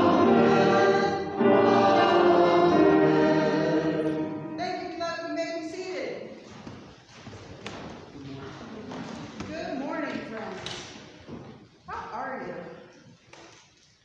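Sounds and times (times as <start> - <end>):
voices echoing in a hall: 4.0 - 14.0.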